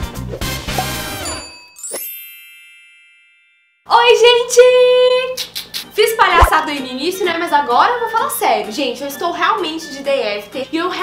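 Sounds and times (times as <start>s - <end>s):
bright bell-like chime: 1.2s - 3.9s.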